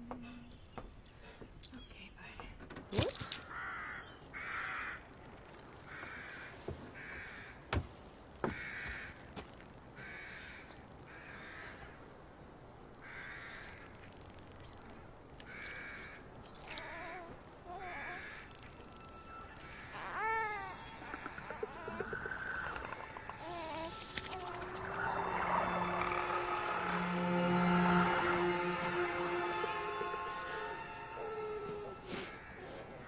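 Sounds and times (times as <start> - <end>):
crows cawing: 3.4 - 7.6, 8.4 - 9.3, 10.0 - 12.0, 13.0 - 14.0, 15.5 - 16.8, 17.8 - 18.6
low sustained music tones: 14.2 - 33.0.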